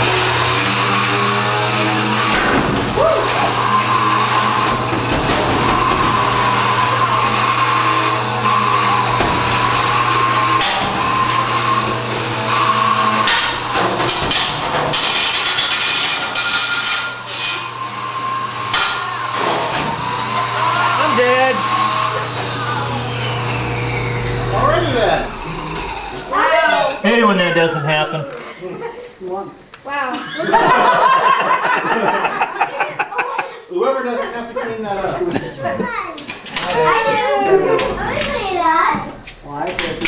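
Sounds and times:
sharp metal-on-metal hits: 10.6s - 11.1s, 13.2s - 17.3s, 18.7s - 19.1s.

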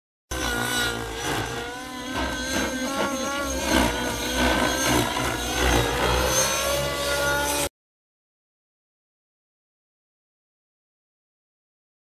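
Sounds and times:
helicopter drivetrain whine: 0.3s - 7.7s.

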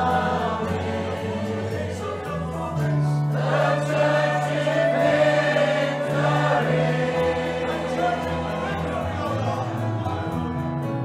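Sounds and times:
choir singing: 0.0s - 10.6s.

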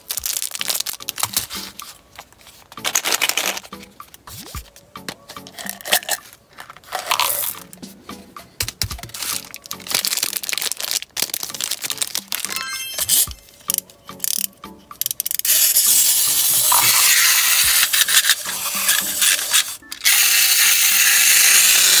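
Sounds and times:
wrapper crinkling: 0.0s - 3.8s, 9.0s - 13.3s
clockwork toy whirring and rattling: 15.0s - 22.0s.

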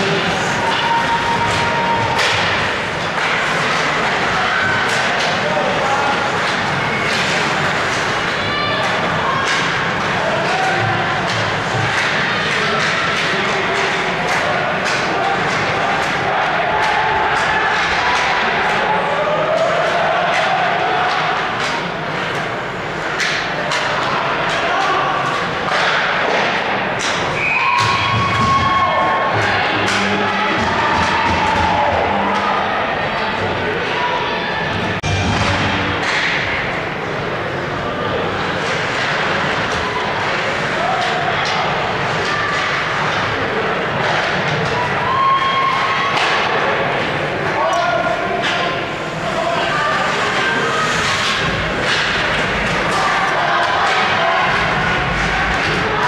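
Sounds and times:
hockey sticks and puck clacking: 0.0s - 34.0s, 34.8s - 56.0s
crowd cheering: 0.0s - 56.0s
spectators' voices and shouts: 0.0s - 56.0s.

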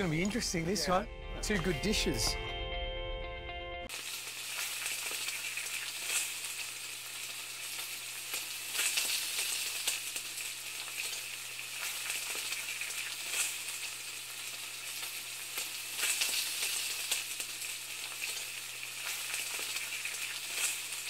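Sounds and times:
food sizzling in a pan: 3.9s - 21.0s.

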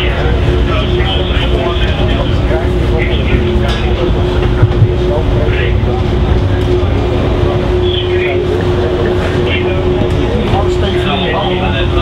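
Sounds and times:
mid-pitched hum: 0.0s - 12.0s
ship machinery rumbling: 0.0s - 12.0s.

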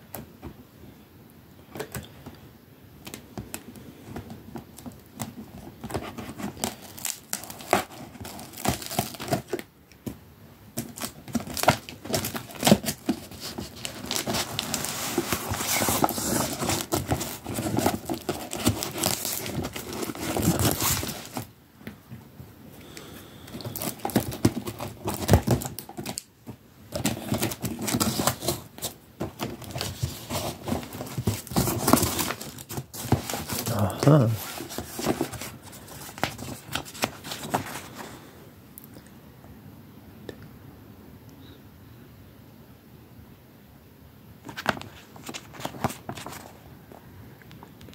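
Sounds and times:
packing tape peeling and tearing: 6.3s - 9.6s, 10.8s - 21.5s
cardboard flaps scraping: 10.8s - 21.5s, 23.6s - 38.1s.

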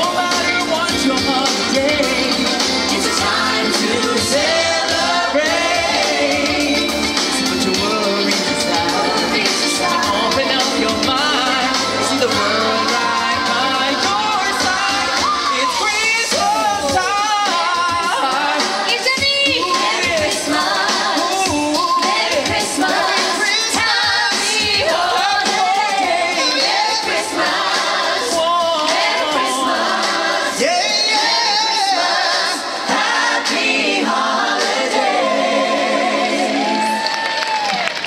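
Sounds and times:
amplified backing music: 0.0s - 37.1s
voices singing together: 0.0s - 37.4s.

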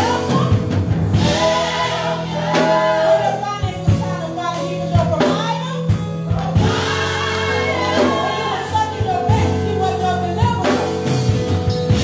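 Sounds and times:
keyboard accompaniment: 0.0s - 12.0s
gospel choir singing: 1.1s - 4.0s, 6.4s - 10.0s.

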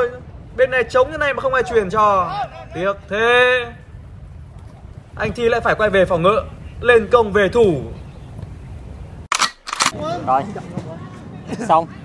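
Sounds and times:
low background noise: 0.0s - 12.0s
camera shutter clicks: 9.3s - 10.0s.

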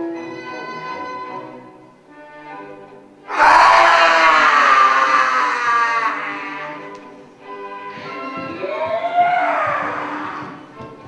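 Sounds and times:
quiet violin music: 0.0s - 3.3s, 6.4s - 11.0s
woman screaming: 3.3s - 6.8s, 8.6s - 10.4s.

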